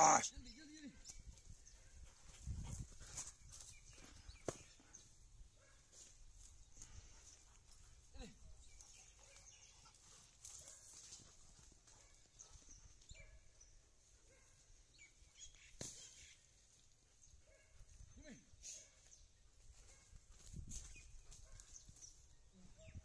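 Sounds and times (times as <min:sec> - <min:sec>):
rustling in grass and brush: 0:01.1 - 0:13.2, 0:19.0 - 0:22.6.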